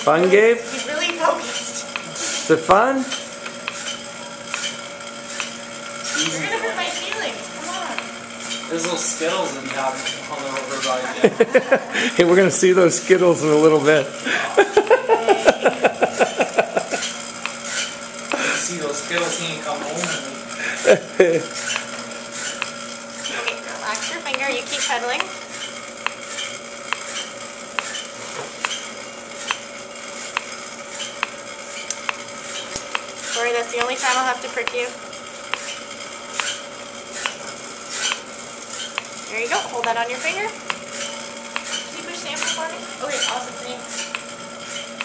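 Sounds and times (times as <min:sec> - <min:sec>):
exercise bike pedal click: 0:00.0 - 0:20.3, 0:20.9 - 0:45.0
steady hum: 0:00.0 - 0:45.0
woman laughing: 0:06.2 - 0:07.4, 0:11.0 - 0:12.2, 0:14.3 - 0:17.1, 0:20.6 - 0:21.5.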